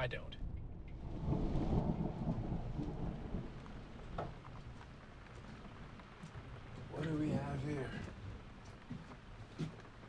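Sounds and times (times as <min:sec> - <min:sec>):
thunder rumbling: 0:00.4 - 0:08.5.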